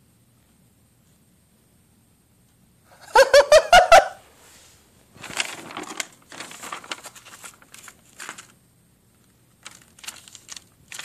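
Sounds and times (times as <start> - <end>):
young person laughing: 3.0 - 4.2
paper rustling and crinkling: 5.1 - 11.0.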